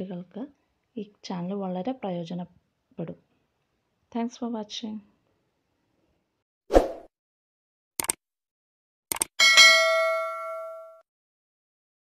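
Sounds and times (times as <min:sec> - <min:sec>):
mouse double-click: 0:08.0 - 0:08.2, 0:09.1 - 0:09.3
bell ding: 0:09.4 - 0:11.0.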